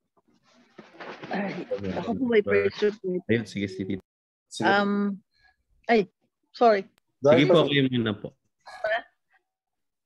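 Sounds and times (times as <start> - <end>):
background noise: 0.0 - 10.0.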